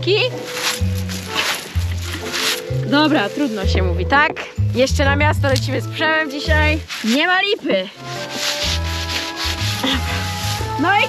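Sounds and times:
background music: 0:00.0 - 0:11.0
dry grass rustling on microphone: 0:00.0 - 0:11.0.

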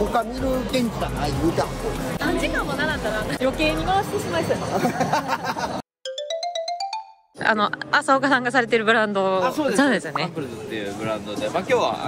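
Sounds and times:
electronic jingle: 0:06.0 - 0:07.4.

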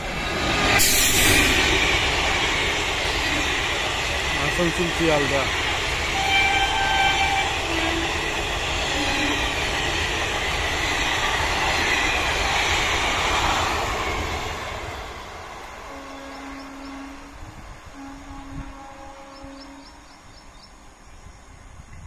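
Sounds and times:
train wheels rumbling on rail: 0:00.0 - 0:22.0
train horn: 0:06.1 - 0:08.2, 0:08.9 - 0:09.7, 0:15.9 - 0:20.2.

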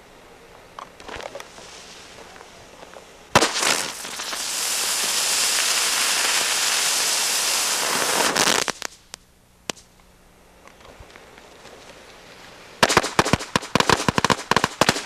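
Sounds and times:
firework crack: 0:00.9 - 0:10.0, 0:10.7 - 0:15.0
firework crackling: 0:01.0 - 0:10.0, 0:11.0 - 0:15.0
hissing spray of sparks: 0:03.4 - 0:09.2.

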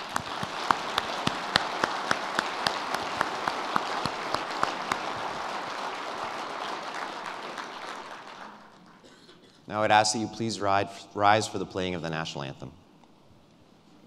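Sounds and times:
close sharp hand claps: 0:00.0 - 0:09.0
audience applauding: 0:00.0 - 0:09.2.

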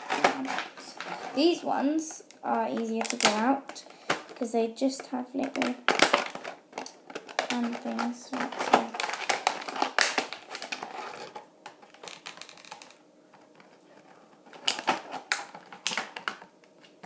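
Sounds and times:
plastic packaging clicking and crinkling: 0:00.0 - 0:17.0.

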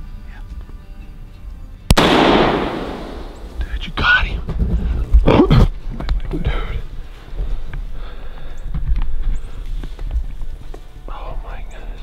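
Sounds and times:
rifle shot echoing: 0:01.9 - 0:03.7.

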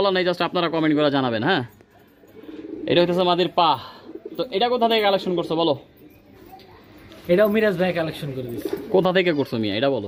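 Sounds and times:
pigeons cooing: 0:02.3 - 0:06.2, 0:08.2 - 0:09.1.

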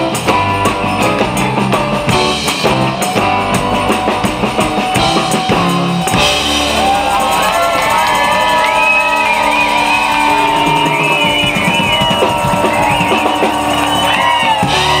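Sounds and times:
drum kit: 0:00.0 - 0:15.0
electric guitar: 0:00.0 - 0:15.0
keyboard: 0:00.0 - 0:15.0
tambourines shaken: 0:00.0 - 0:15.0.

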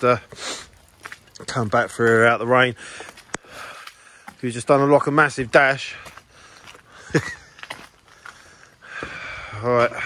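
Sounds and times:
footsteps on wet ground: 0:00.0 - 0:10.0.

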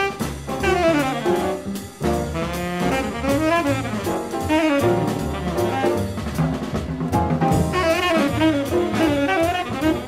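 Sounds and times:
tenor saxophone solo: 0:00.0 - 0:06.2, 0:07.5 - 0:10.0
bass: 0:00.0 - 0:10.0
drum kit with cymbals: 0:00.0 - 0:10.0.

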